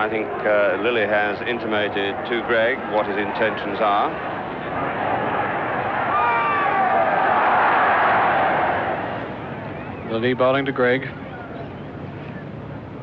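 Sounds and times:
crowd roar: 2.8 - 10.0.

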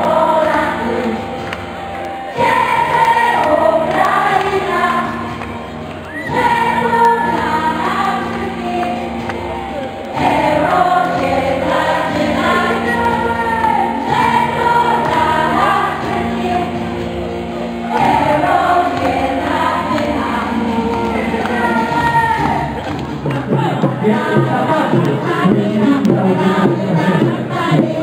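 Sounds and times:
musical accompaniment: 0.0 - 28.0
women's folk choir singing: 0.0 - 28.0.

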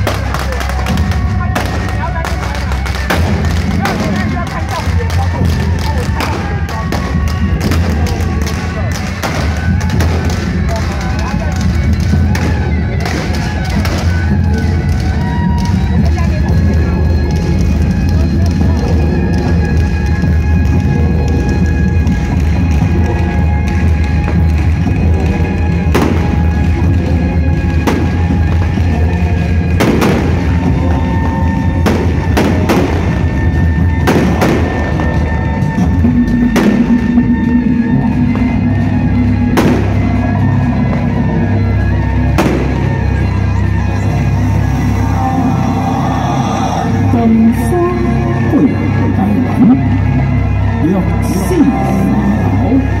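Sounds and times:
sharp cracks: 0.0 - 15.8, 29.7 - 30.8.

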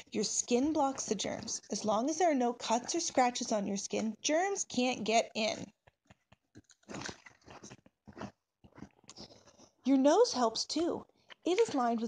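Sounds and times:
paper page rustling: 6.6 - 9.6.

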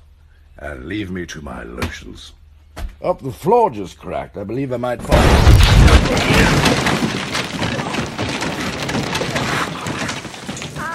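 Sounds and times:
debris falling and scattering: 5.0 - 10.9.

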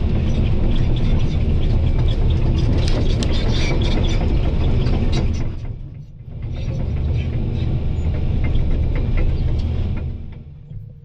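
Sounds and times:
excavator diesel engine: 0.0 - 11.0
sharp clicks and cracks: 2.6 - 3.8.

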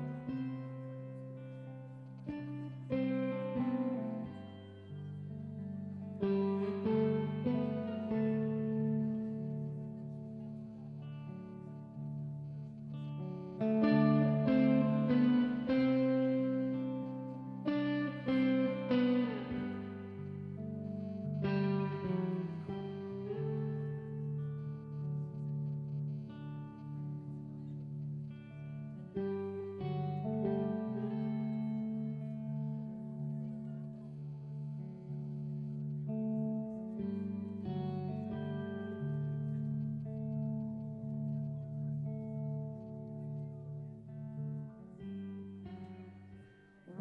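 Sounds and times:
electric guitar chords ringing: 0.0 - 47.0.

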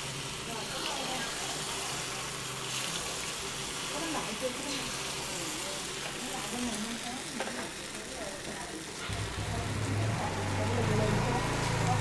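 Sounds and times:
batter sizzling in hot oil: 0.0 - 12.0.

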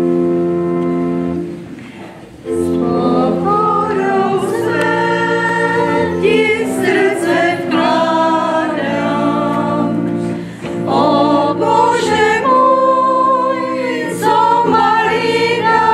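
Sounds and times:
pipe organ chords: 0.0 - 15.9
choir singing a hymn: 2.4 - 15.9.

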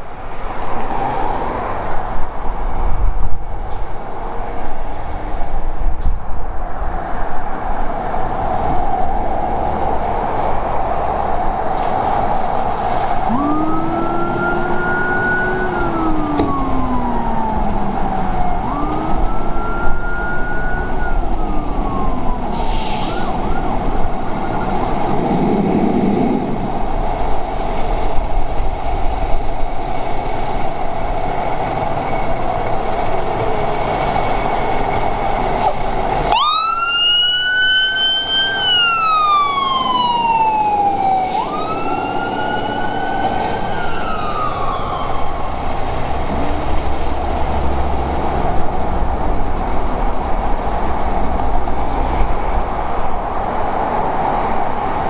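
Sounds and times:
truck engine: 0.0 - 55.0
deep low-frequency siren: 8.3 - 27.2, 36.1 - 50.7
electronic siren wailing: 13.2 - 25.0, 36.3 - 45.7.

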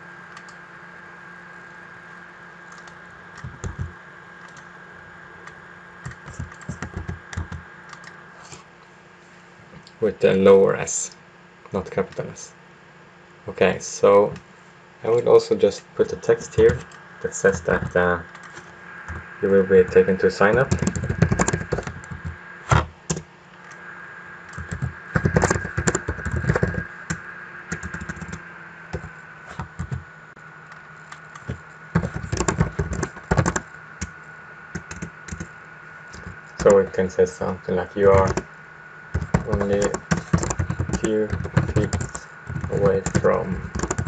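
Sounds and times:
computer keyboard keystrokes: 2.7 - 4.7, 5.4 - 8.2, 20.7 - 23.2, 24.5 - 26.8, 27.7 - 28.4, 31.1 - 34.1, 34.8 - 35.5, 38.1 - 38.4, 39.2 - 44.0.

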